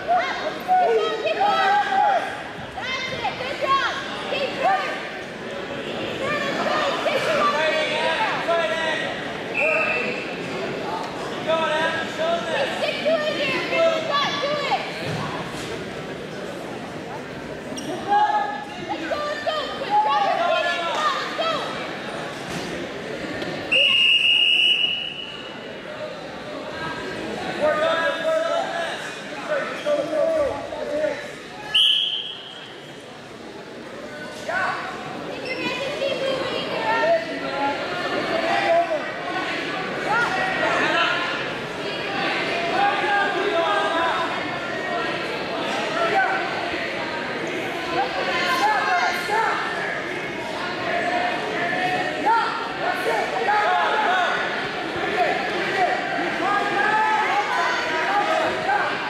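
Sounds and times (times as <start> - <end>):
chattering voices: 0.0 - 59.0
referee whistle blasts: 9.5 - 10.3, 23.7 - 25.5, 31.7 - 32.8.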